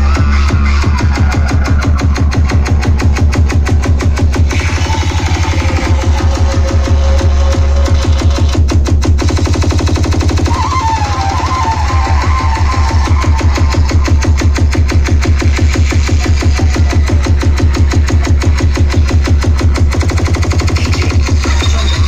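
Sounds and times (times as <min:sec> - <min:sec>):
loud dance music: 0:00.0 - 0:22.0.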